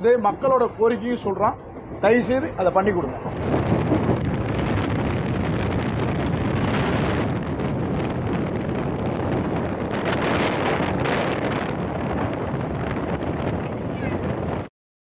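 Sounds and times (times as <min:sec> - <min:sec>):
train running noise: 0:00.0 - 0:14.7
wind buffeting microphone: 0:00.0 - 0:14.7.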